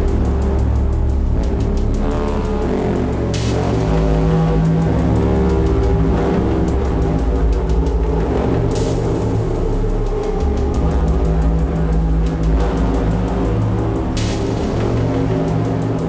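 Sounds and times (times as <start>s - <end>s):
low droning bass tones: 0.0s - 16.0s.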